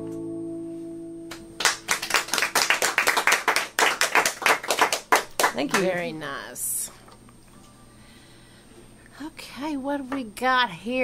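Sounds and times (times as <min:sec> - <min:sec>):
acoustic guitar chord ringing: 0:00.0 - 0:01.9
audience clapping: 0:01.3 - 0:06.1.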